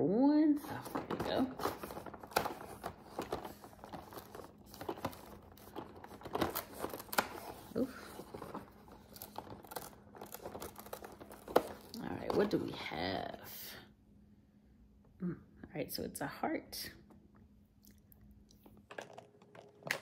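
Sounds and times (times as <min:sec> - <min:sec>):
cardboard and paper crinkling: 0:00.6 - 0:12.9.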